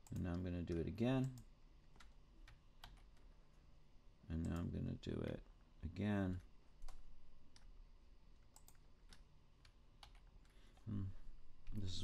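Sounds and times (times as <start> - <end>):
computer mouse clicks: 8.4 - 10.9.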